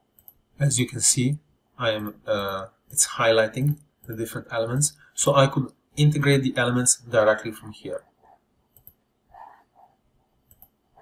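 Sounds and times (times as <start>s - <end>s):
faint soft sounds: 0.0s - 11.0s
computer mouse clicks: 0.1s - 0.4s, 8.2s - 11.0s.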